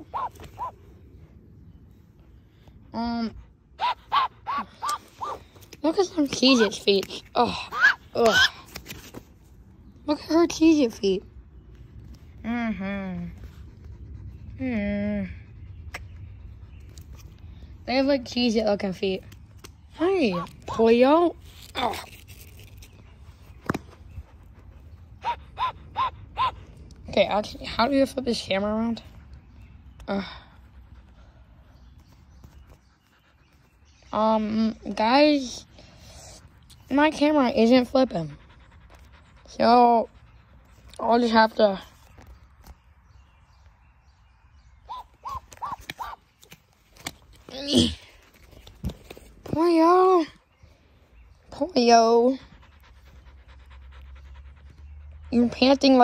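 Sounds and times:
duck panting: 52.4 - 56.0.

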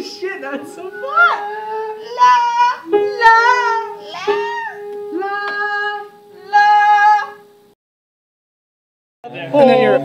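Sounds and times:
voices singing a cappella: 0.0 - 7.4, 9.3 - 10.0.

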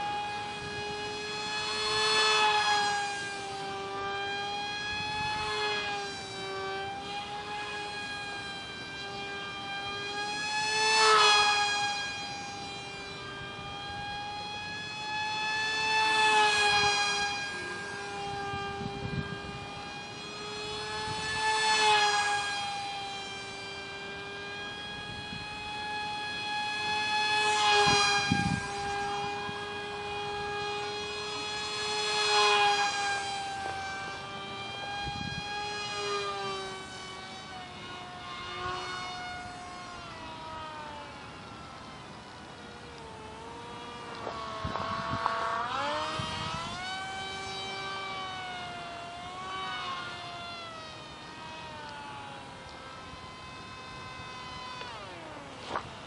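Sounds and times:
electric motor whine: 0.0 - 56.0.

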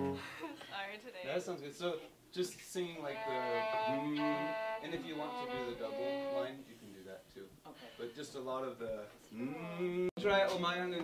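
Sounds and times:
violin playing long held notes: 3.0 - 6.6.

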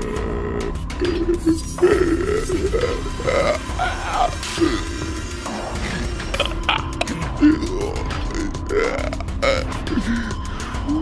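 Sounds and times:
eerie background music: 0.0 - 11.0
man's guttural vocal sound: 0.0 - 11.0.

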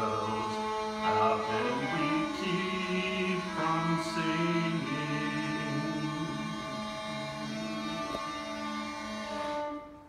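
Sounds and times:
violin playing long held notes: 0.0 - 10.0.

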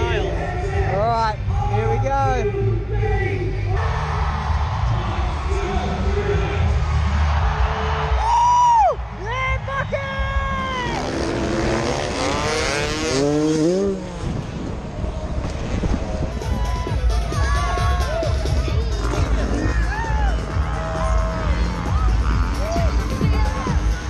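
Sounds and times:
stadium low rumble: 0.0 - 24.0
motocross bike engines revving: 9.1 - 24.0.

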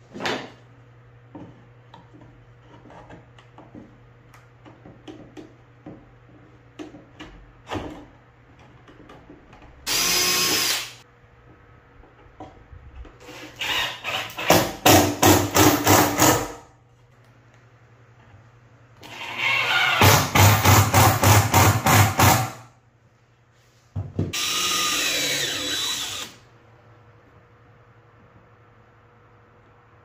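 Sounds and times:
cordless drill driving screws: 9.9 - 11.0, 24.4 - 26.4.

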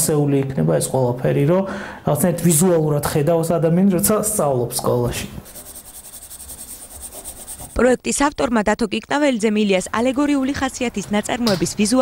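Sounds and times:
pencil scratching on paper: 5.4 - 7.8.

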